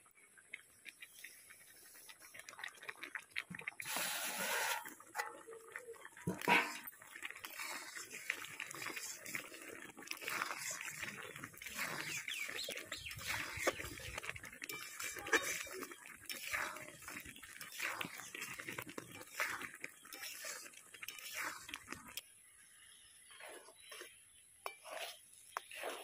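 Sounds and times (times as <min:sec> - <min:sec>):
bubbling and spluttering in a pan: 0:00.0 - 0:26.0
ladle scraping a pan: 0:03.9 - 0:05.5, 0:06.2 - 0:22.2, 0:23.4 - 0:26.0.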